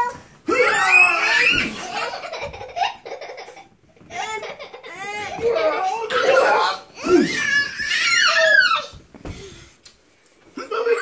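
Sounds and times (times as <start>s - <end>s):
child squealing with delight: 0.5s - 1.8s, 6.1s - 9.0s.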